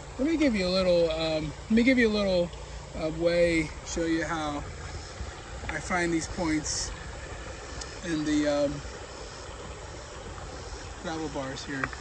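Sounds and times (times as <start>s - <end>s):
rushing outdoor background noise: 0.0s - 12.0s.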